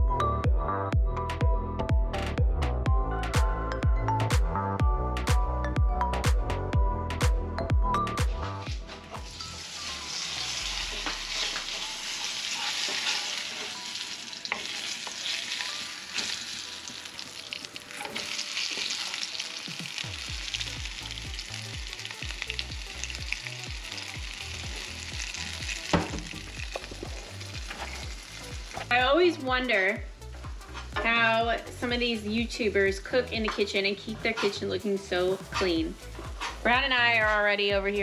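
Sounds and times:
fish sizzling in a pan: 0:09.1 - 0:29.0
wooden spatula stirring: 0:10.9 - 0:16.4.

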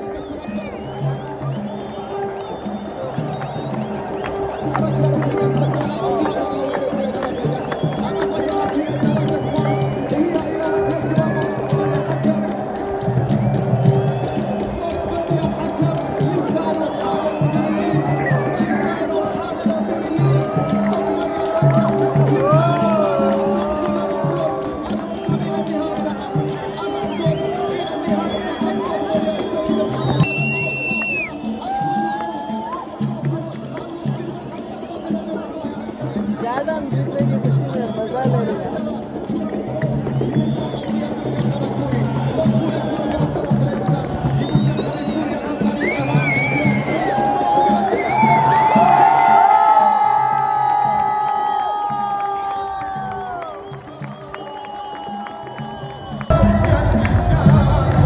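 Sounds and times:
crowd chatter: 0:00.0 - 0:58.0
loud music with repeating bass: 0:56.3 - 0:58.0.

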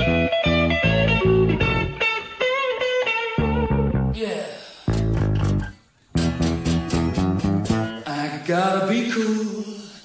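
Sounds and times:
bass guitar: 0:00.0 - 0:04.2, 0:04.9 - 0:08.1
strummed rhythm guitar chords: 0:00.0 - 0:04.2, 0:04.9 - 0:08.2.

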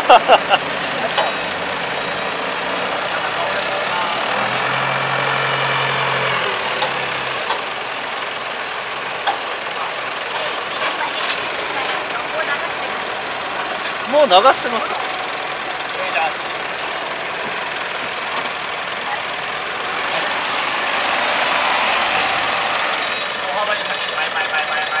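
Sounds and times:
loader and forklift engines running: 0:00.0 - 0:25.0.

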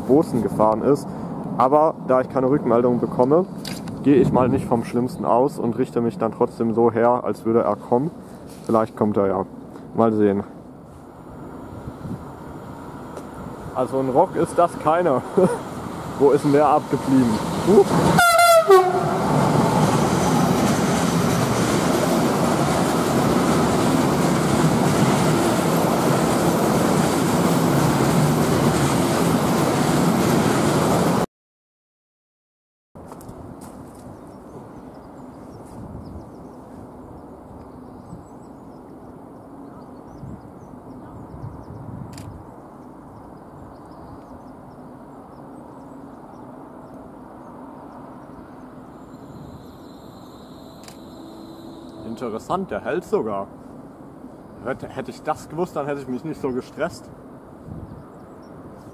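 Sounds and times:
train wagons rolling on rails: 0:12.2 - 0:31.2
train horn blast: 0:18.1 - 0:19.3, 0:49.2 - 0:52.4.

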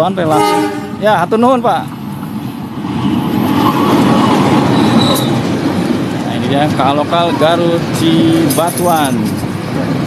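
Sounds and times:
diesel locomotive engine: 0:00.0 - 0:10.0
train wheels on rails: 0:00.0 - 0:10.0
high squeak: 0:04.7 - 0:05.4.

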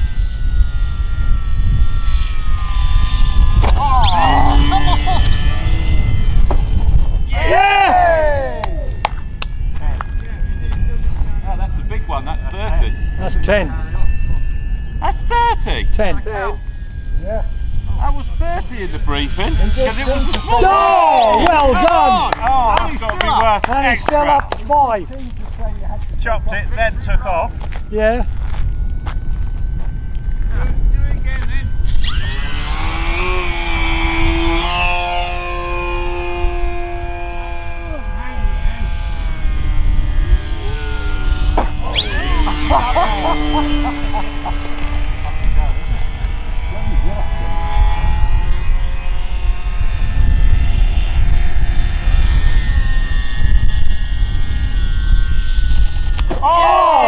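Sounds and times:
model plane motors whining: 0:00.0 - 0:57.0
wind rumble on microphone: 0:00.0 - 0:57.0.

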